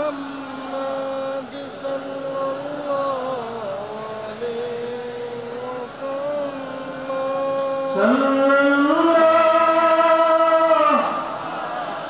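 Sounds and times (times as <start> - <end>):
chanting in long held notes: 0.0 - 12.0.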